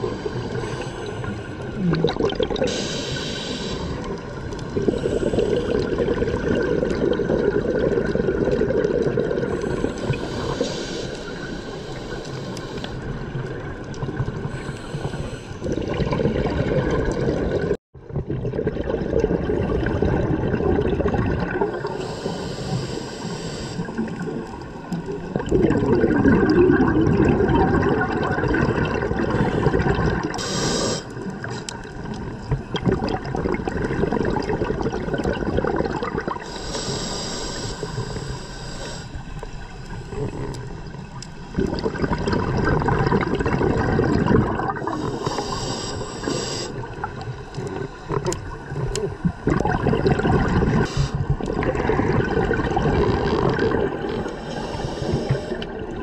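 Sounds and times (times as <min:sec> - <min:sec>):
underwater bubbles gurgling: 0:00.0 - 0:56.0
regulator hissing breaths: 0:02.7 - 0:04.1, 0:09.5 - 0:13.3, 0:14.5 - 0:15.6, 0:21.9 - 0:24.0, 0:30.4 - 0:31.8, 0:36.4 - 0:40.8, 0:44.9 - 0:47.0, 0:50.8 - 0:51.3, 0:54.1 - 0:55.8.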